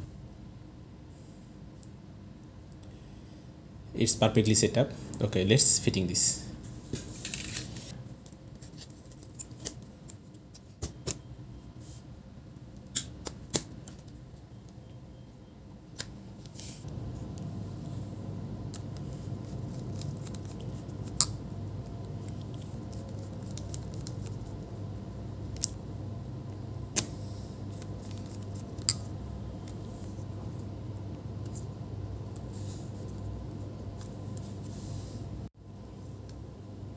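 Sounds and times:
low steady hum: 0.0s - 36.9s.

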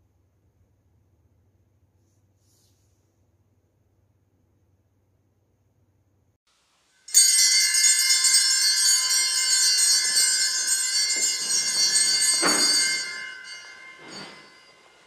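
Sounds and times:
hand bell ringing: 7.1s - 15.0s.

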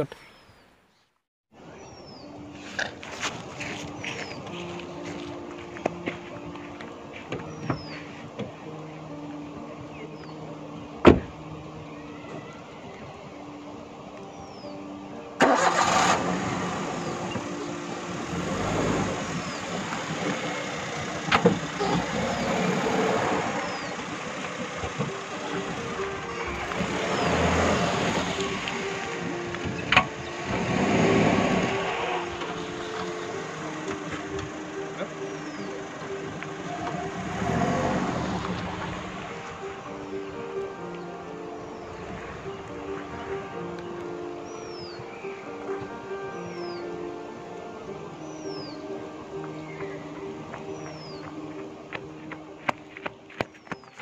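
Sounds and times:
background music: 1.6s - 54.0s
car engine starting and driving: 15.4s - 41.0s, 41.7s - 43.9s.

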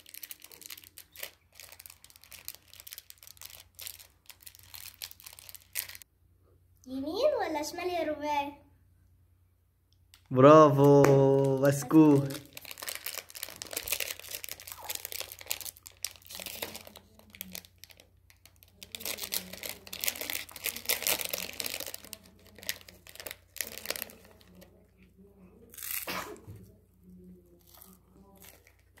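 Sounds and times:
plastic snack packet crinkling: 0.0s - 6.0s, 10.1s - 24.9s, 27.5s - 29.0s.

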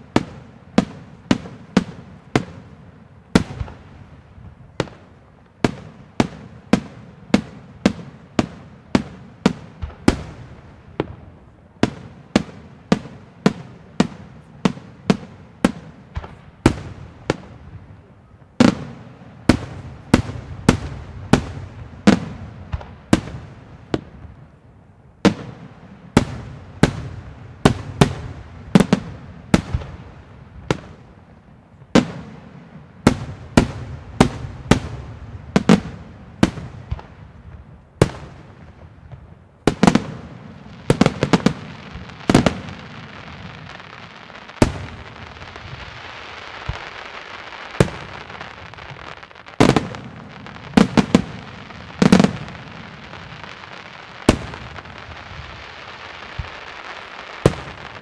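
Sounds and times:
fireworks bursting with sharp bangs: 0.0s - 58.0s.

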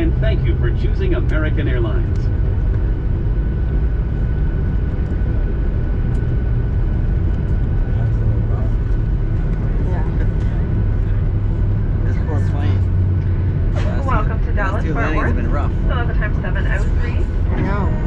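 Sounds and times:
aircraft engine rumble: 0.0s - 18.0s
thin steady whine: 0.0s - 18.0s
faint voices: 13.7s - 18.0s.

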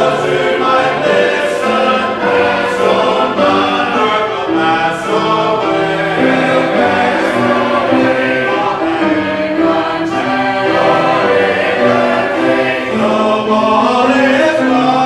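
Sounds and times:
congregation singing in harmony: 0.0s - 15.0s.

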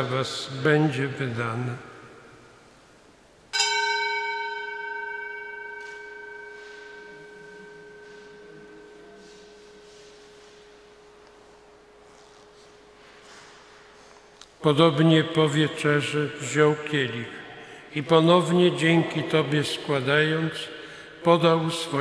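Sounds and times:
altar bell ringing: 3.5s - 15.6s.

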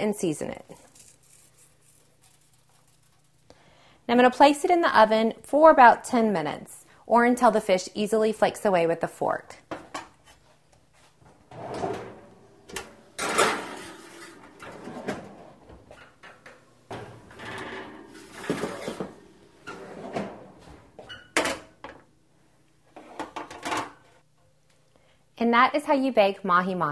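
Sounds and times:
oven door opening and shutting: 11.4s - 22.0s.

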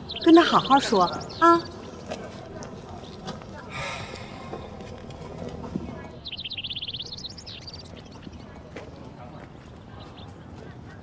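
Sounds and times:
songbird trilling chirps: 0.0s - 4.8s, 6.1s - 8.7s
faint street noise: 0.0s - 11.0s.

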